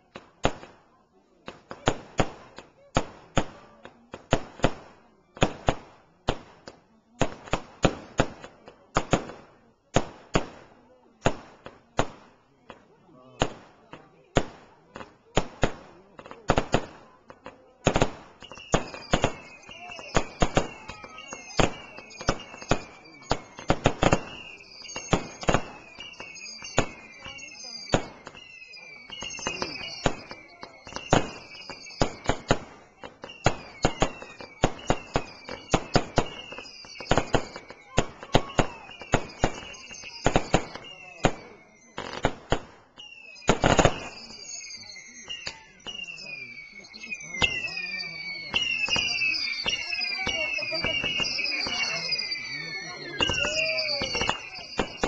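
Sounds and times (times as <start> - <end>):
fireworks bangs: 0.1 - 55.0
fireworks whistles: 1.4 - 55.0.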